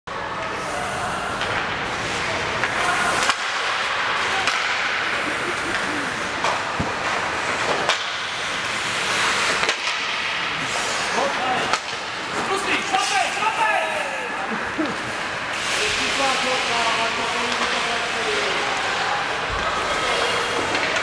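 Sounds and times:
skates scraping ice: 0.4s - 21.0s
sticks and puck clacking: 1.3s - 13.2s, 15.1s - 21.0s.

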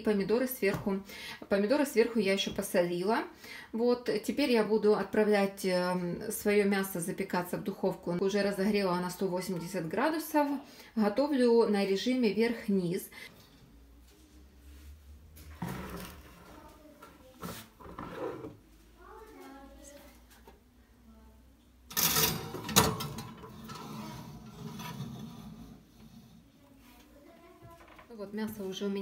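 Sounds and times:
quiet scrapes: 14.2s - 18.6s, 23.4s - 27.1s
glass dish and oven rack clattering: 21.9s - 25.2s.

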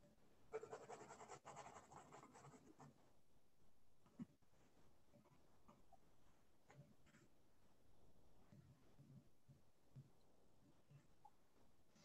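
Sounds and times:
pen scratching on paper: 0.5s - 3.0s.

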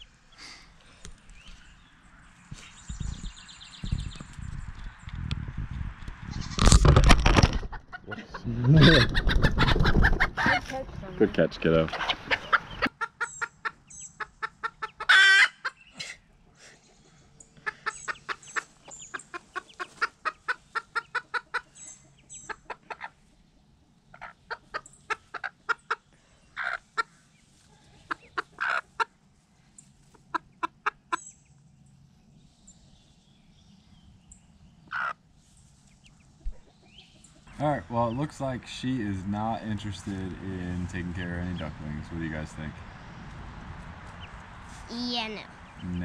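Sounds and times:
ducklings peeping: 7.7s - 16.0s, 16.8s - 29.2s, 33.9s - 43.0s, 45.5s - 46.0s
hen calling: 7.9s - 16.0s, 24.1s - 29.2s, 34.8s - 35.2s.

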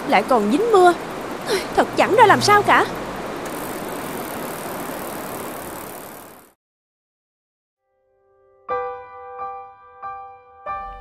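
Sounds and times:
rain hiss: 0.0s - 6.5s.

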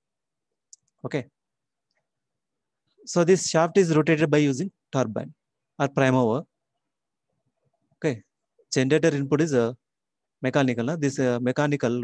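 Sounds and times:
man speaking: 1.0s - 1.4s, 3.0s - 6.5s, 8.0s - 9.8s, 10.4s - 12.0s.

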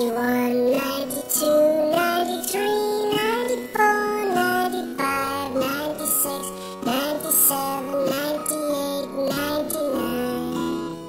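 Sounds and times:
instrumental backing music: 0.0s - 11.0s.

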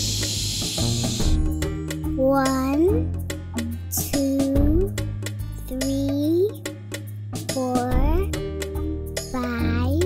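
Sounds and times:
children's background music: 0.0s - 10.0s.

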